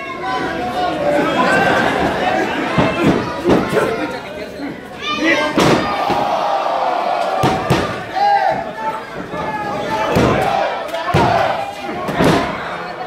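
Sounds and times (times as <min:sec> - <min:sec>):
spectators shouting: 0:05.0 - 0:13.0.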